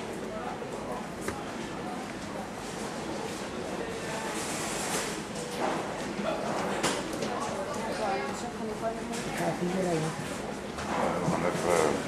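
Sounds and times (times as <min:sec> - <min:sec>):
people chattering: 0:00.0 - 0:04.4, 0:05.2 - 0:12.0
steady background noise: 0:00.0 - 0:12.0.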